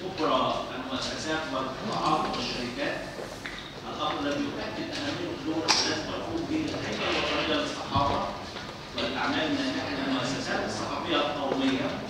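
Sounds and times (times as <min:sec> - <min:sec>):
speech in a large hall: 0:00.0 - 0:12.0.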